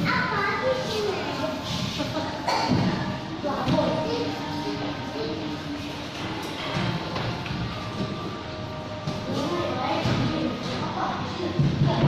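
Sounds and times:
voices of children and adults: 0.0s - 12.0s.

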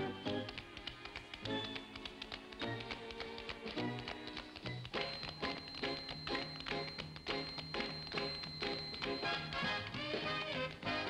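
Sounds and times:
musical accompaniment: 0.0s - 11.0s
tap shoes on stage floor: 0.0s - 11.0s.

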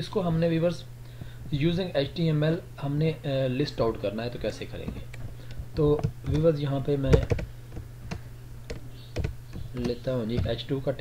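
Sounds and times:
steady low hum: 0.0s - 11.0s
computer keyboard keystrokes: 6.0s - 6.5s, 7.1s - 7.5s, 8.1s - 10.6s.

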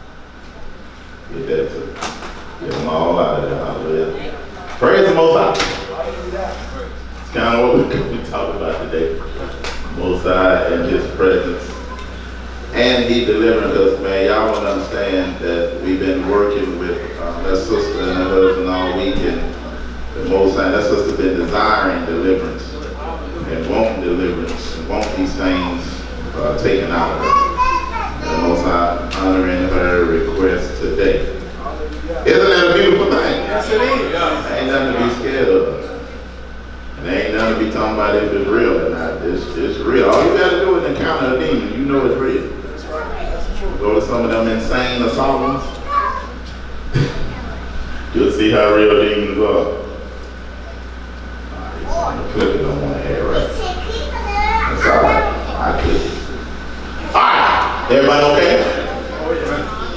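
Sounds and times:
steady low hum: 0.0s - 59.9s
children chattering and calling: 25.9s - 30.2s, 31.4s - 36.3s, 42.6s - 44.0s, 45.2s - 48.0s, 50.5s - 59.9s.

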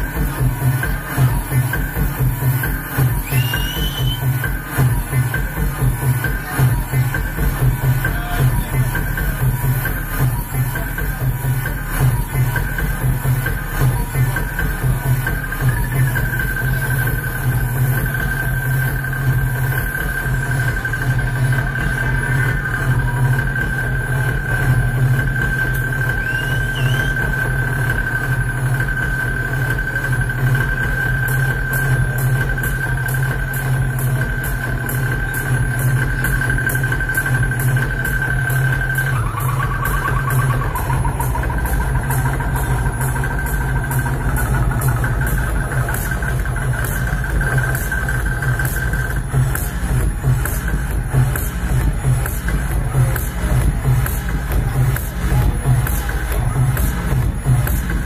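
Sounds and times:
live electronic music: 0.0s - 58.0s
low synthesizer drone: 27.2s - 58.0s
high-pitched synthesizer tone: 38.3s - 49.4s.

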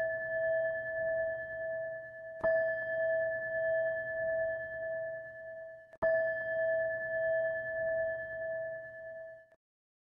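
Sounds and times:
meditation bell ringing: 0.0s - 9.5s.

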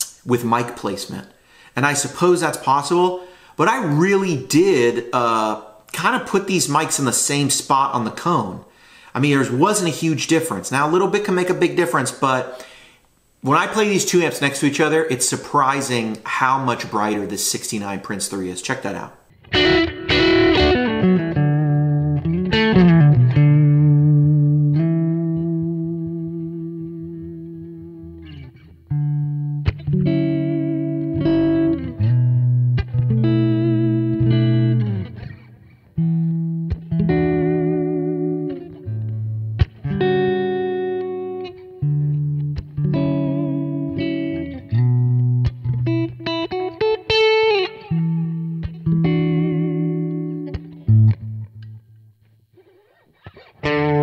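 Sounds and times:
electric guitar chords: 19.3s - 52.0s, 52.6s - 54.0s.

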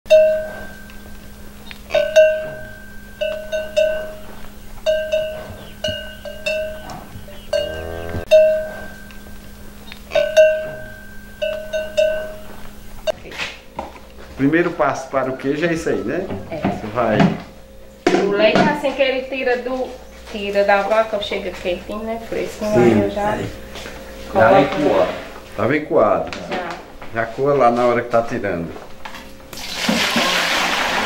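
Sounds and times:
cowbell-like metal bell strikes: 0.1s - 1.1s, 1.9s - 9.3s, 10.1s - 12.5s
steady low hum: 0.1s - 29.5s
call with wavering pitch: 22.6s - 25.0s.

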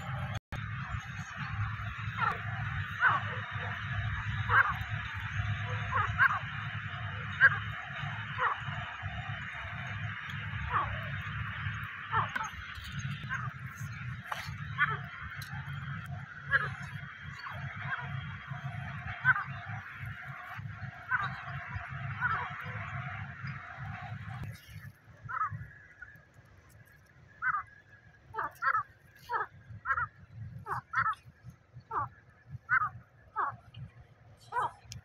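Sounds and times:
chorus of bird calls: 0.0s - 26.3s, 27.3s - 31.3s, 31.9s - 33.8s.

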